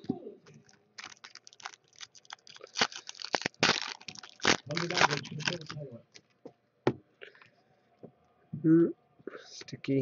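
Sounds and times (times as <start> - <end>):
foil wrapper crinkling and tearing: 0.6 - 6.3.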